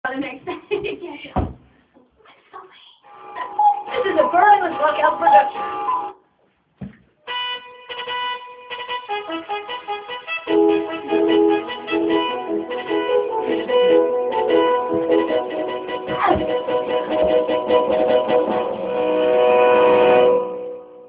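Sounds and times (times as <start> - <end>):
keyboard music: 3.1 - 6.2, 7.3 - 21.0.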